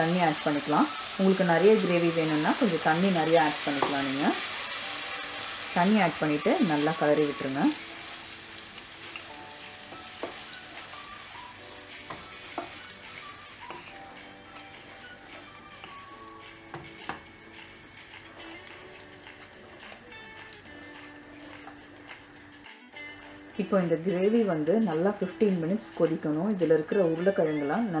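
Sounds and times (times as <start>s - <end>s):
gravy sizzling in a pan: 0.0s - 23.5s
faint background music: 0.0s - 28.0s
wooden spatula stirring: 0.3s - 13.9s.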